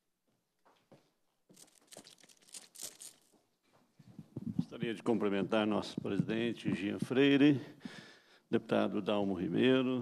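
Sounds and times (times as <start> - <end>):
rustling and crinkling: 1.5 - 4.8.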